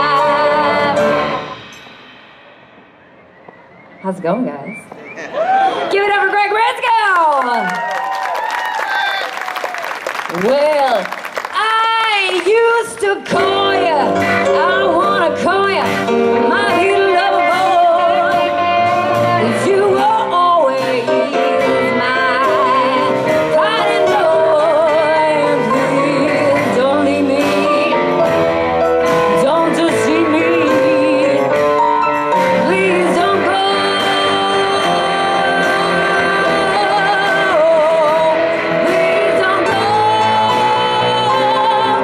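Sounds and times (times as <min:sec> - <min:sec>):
woman singing with vibrato: 0:00.0 - 0:01.6, 0:11.6 - 0:28.4, 0:29.2 - 0:42.0
guitar accompaniment: 0:12.5 - 0:42.0
keyboard: 0:12.6 - 0:42.0.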